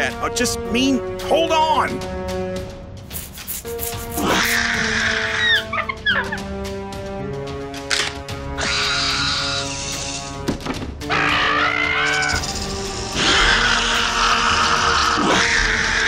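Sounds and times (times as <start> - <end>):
film score music: 0.0 - 16.0
rustling hissing sound effects: 3.0 - 4.6.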